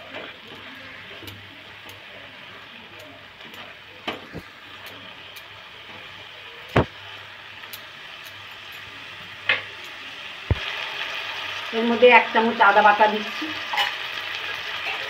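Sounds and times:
vegetables sizzling in oil: 0:00.0 - 0:15.0.

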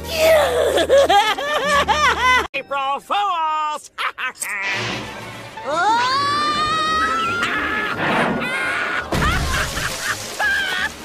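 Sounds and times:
cartoon character laughing hysterically: 0:00.4 - 0:02.5, 0:03.9 - 0:04.7, 0:07.1 - 0:11.0.

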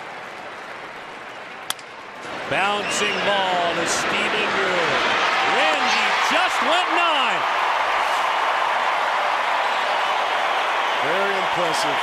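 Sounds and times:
ballpark crowd noise: 0:00.0 - 0:12.0.

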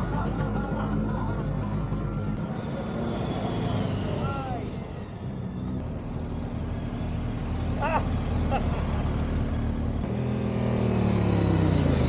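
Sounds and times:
motorcycle riding past: 0:05.9 - 0:12.0.

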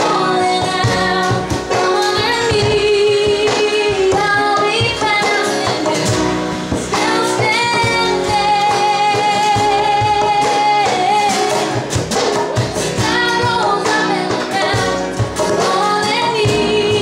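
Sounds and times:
woman singing: 0:00.0 - 0:12.0, 0:12.6 - 0:17.0
guitar: 0:00.0 - 0:17.0
piano: 0:00.0 - 0:17.0.

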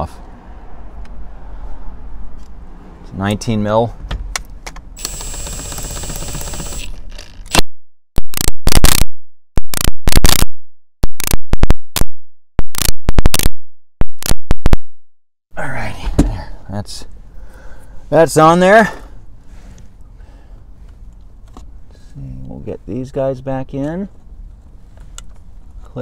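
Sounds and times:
impact wrench whirring: 0:05.0 - 0:07.6.

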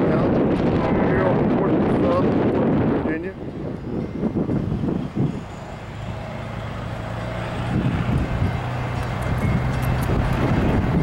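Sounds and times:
diesel locomotive engine drone: 0:00.0 - 0:11.0.

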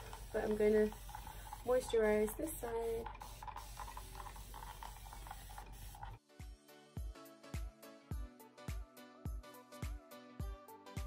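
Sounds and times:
spray bottle hissing: 0:00.0 - 0:06.2
spray trigger pumping: 0:00.0 - 0:06.2.

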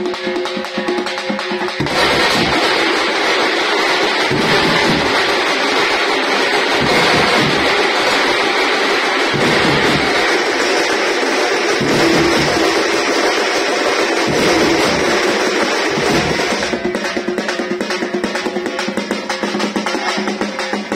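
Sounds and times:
side drums clattering: 0:00.0 - 0:20.9.

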